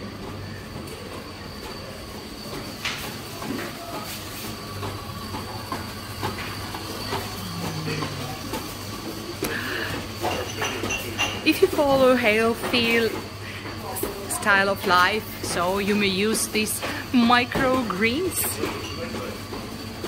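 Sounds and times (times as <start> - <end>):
equipment and ventilation hum: 0.0 - 20.0
kitchen clicks and clinks: 10.2 - 11.5.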